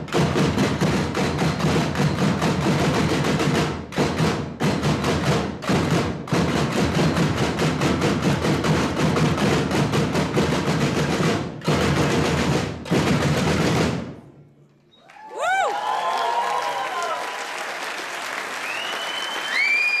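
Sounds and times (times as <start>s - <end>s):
audience applauding: 15.0s - 20.0s
gliding whistles: 18.6s - 20.0s.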